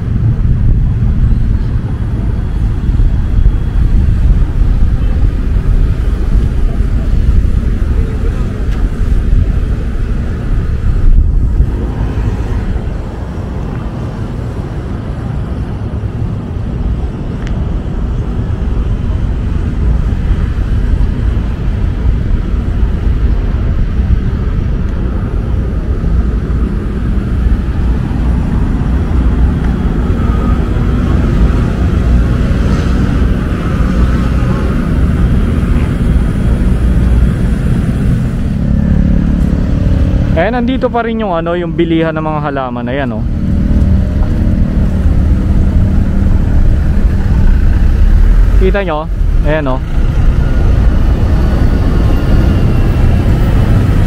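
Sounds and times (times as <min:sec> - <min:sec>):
nearby engine humming: 0:00.0 - 0:54.0
road traffic: 0:00.0 - 0:54.0
wind rumble on microphone: 0:00.0 - 0:54.0.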